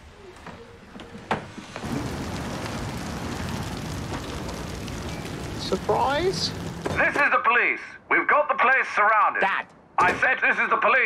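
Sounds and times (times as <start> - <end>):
car fire flames rushing: 1.5 - 7.3.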